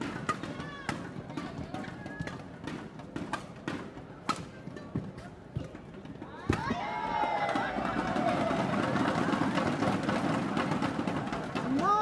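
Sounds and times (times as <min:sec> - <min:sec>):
rackets striking shuttlecock: 0:00.0 - 0:05.8.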